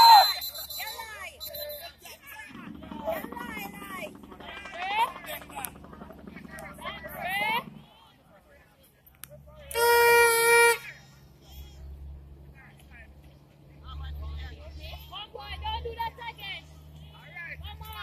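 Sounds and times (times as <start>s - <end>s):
people shouting: 0.0s - 1.1s
distant traffic rumble: 0.0s - 18.0s
vehicle horn: 9.7s - 10.8s.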